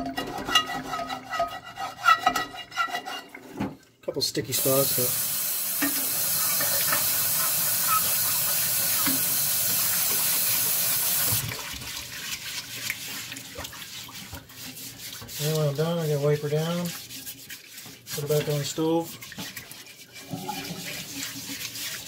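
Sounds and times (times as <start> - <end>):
brush scrubbing pan: 0.1 - 3.4, 4.5 - 5.2, 5.8 - 22.0
tap water running into skillet: 4.5 - 22.0
small water splashes: 11.2 - 15.6.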